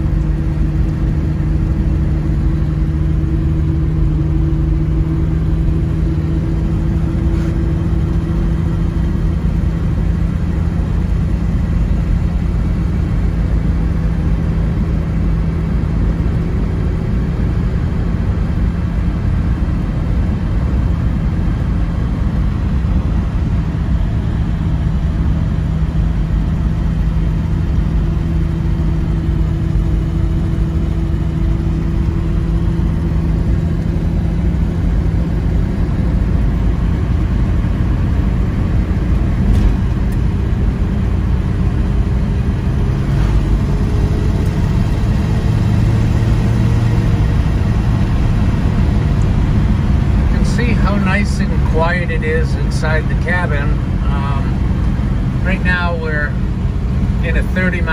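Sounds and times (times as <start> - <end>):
car engine and tyres humming: 0.0 - 57.9.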